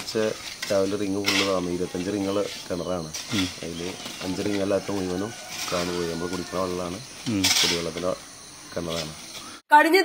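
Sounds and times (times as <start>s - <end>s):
man speaking: 0.0s - 9.2s.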